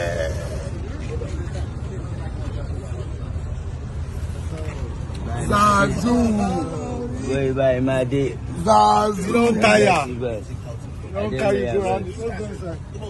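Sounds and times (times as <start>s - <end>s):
indistinct voices: 0.0s - 2.6s.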